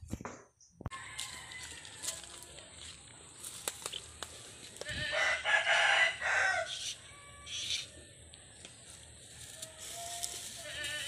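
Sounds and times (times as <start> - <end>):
rooster crowing: 0.9 - 2.5, 5.0 - 7.6.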